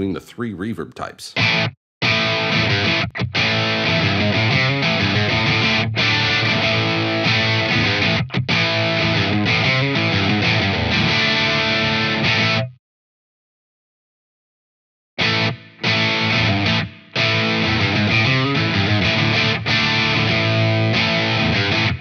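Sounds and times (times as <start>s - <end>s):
overdriven electric guitar: 1.4s - 12.8s, 15.2s - 22.0s.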